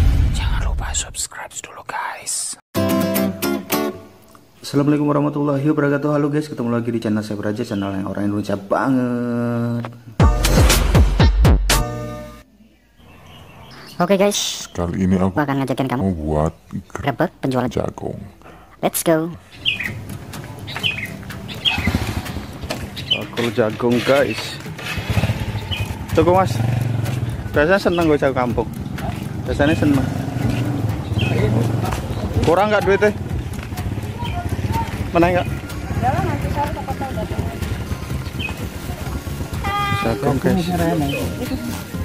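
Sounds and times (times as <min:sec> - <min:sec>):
person whispering: 0:00.3 - 0:02.6
guitar music: 0:02.8 - 0:04.5
bird chirp: 0:12.5 - 0:15.3, 0:19.4 - 0:39.1
motorcycle engine idling: 0:19.6 - 0:42.0.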